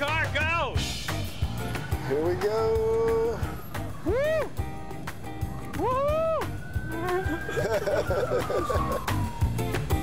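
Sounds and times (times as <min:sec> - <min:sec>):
background music with steady beat: 0:00.0 - 0:10.0
man whooping: 0:04.0 - 0:04.6, 0:05.7 - 0:09.3
laughter: 0:07.2 - 0:09.0.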